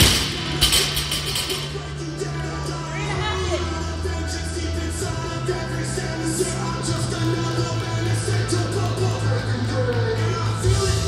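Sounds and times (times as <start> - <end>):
loud background music: 0.0 - 11.0.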